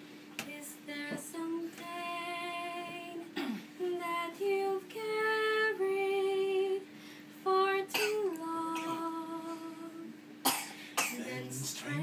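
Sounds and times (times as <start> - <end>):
woman singing: 0.4 - 10.2
short sharp cough: 3.4 - 3.7.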